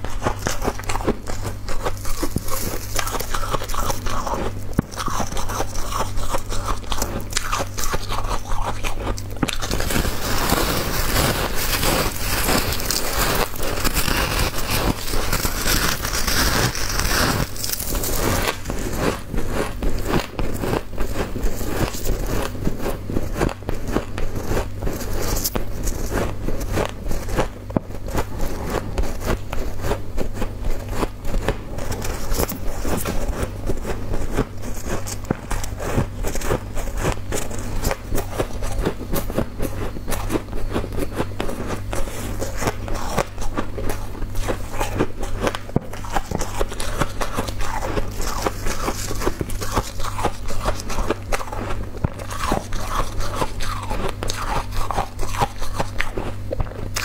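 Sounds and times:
chewing crunchy ice: 0:00.0 - 0:57.0.

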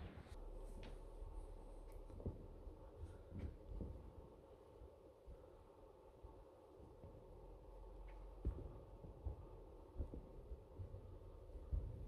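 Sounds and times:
soft low thumps: 0:00.0 - 0:04.3, 0:08.0 - 0:12.0
low steady hum: 0:00.0 - 0:12.0.

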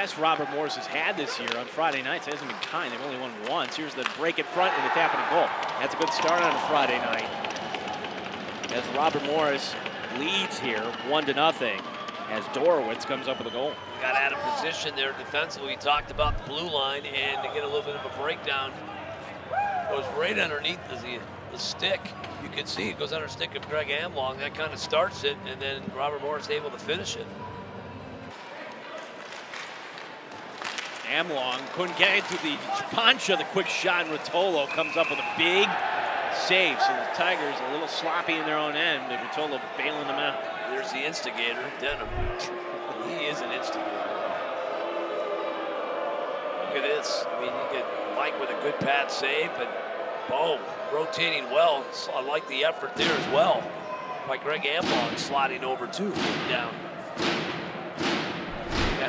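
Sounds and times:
hockey sticks and puck clicking: 0:01.4 - 0:04.6, 0:05.5 - 0:12.2, 0:28.3 - 0:34.3
low thud: 0:16.0 - 0:16.5, 0:57.2 - 0:59.0.

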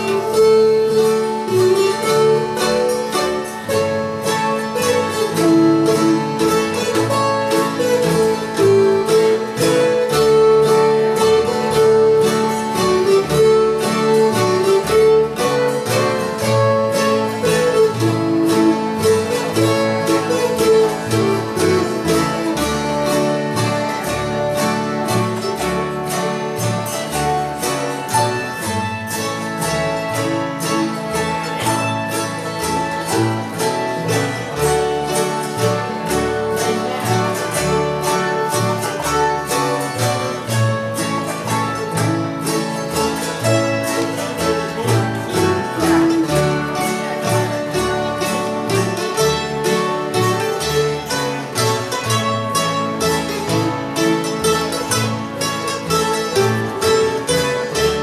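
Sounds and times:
acoustic guitar: 0:00.0 - 0:58.0
autoharp: 0:00.0 - 0:58.0
hammered dulcimer melody: 0:00.0 - 0:58.0.

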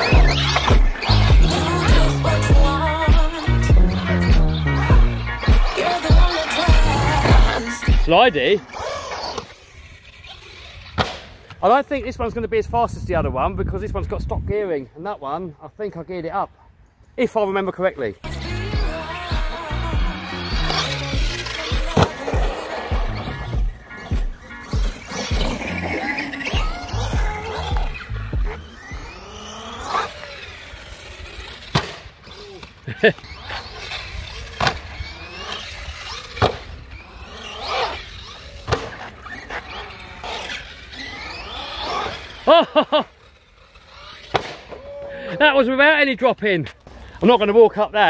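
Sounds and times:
music with bass beat: 0:00.0 - 0:08.1, 0:18.3 - 0:25.6, 0:26.6 - 0:29.1
tyres rattling on concrete: 0:00.0 - 0:11.6, 0:18.2 - 0:44.4
rc car motor whining: 0:00.0 - 0:11.8, 0:17.4 - 0:45.4
toy car landing hard on concrete: 0:10.9 - 0:11.4, 0:31.6 - 0:32.7, 0:44.2 - 0:44.8
man laughing: 0:32.4 - 0:33.4, 0:42.3 - 0:43.3.

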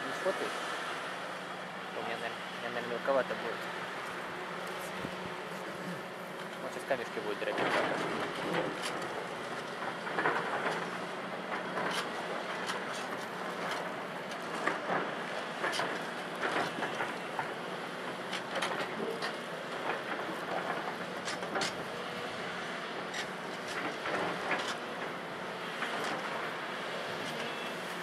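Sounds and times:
excavator diesel hum: 0:00.0 - 0:28.0.

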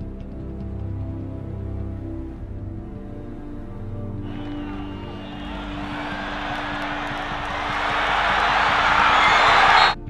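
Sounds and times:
music drone: 0:04.2 - 0:10.0
stadium crowd roar: 0:04.3 - 0:10.0.

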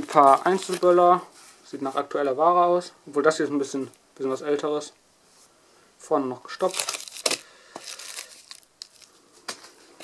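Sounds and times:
cardboard and plastic rustling: 0:00.0 - 0:01.6, 0:06.6 - 0:10.0.

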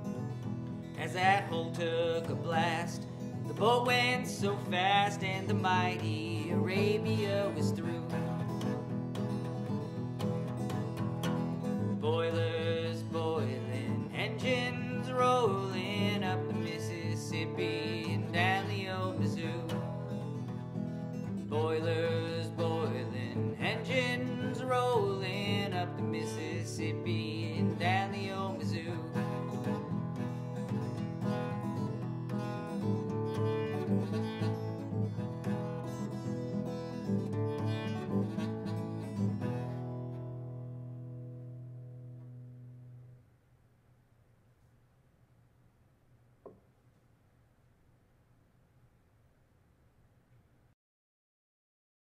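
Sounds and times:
acoustic guitar playing: 0:00.0 - 0:43.3.

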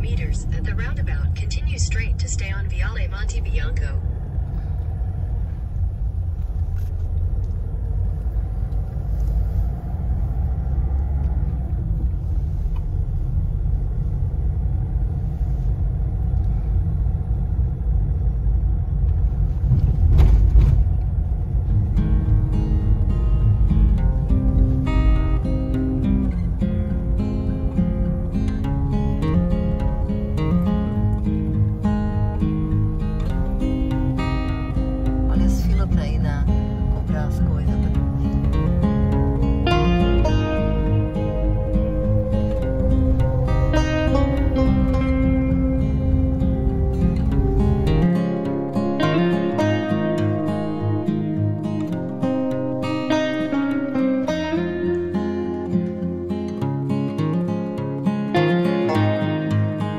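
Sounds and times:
acoustic guitar tune: 0:00.0 - 0:04.0, 0:20.6 - 0:59.9
road and engine rumble in car: 0:00.0 - 0:59.9.

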